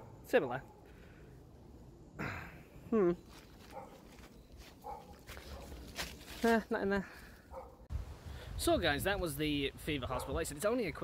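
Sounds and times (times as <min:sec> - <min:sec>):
man humming hmm: 0:02.2 - 0:03.2
dog barking faintly: 0:04.8 - 0:05.8.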